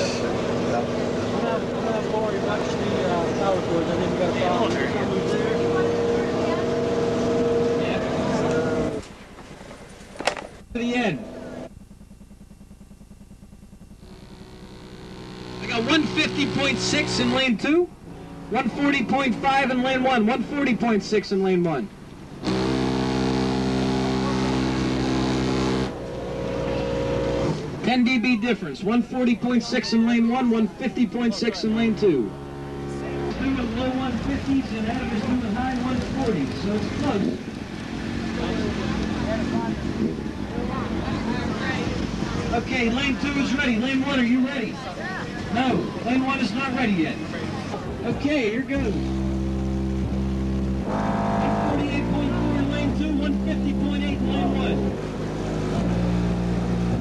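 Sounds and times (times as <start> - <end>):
car audio low bass tone: 0.0 - 57.0.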